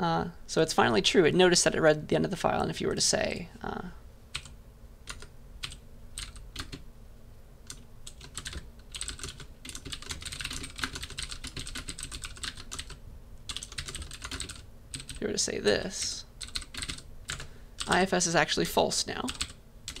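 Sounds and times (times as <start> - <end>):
typing on computer keyboard: 4.4 - 6.8, 7.7 - 15.2, 16.4 - 18.0, 19.3 - 20.0.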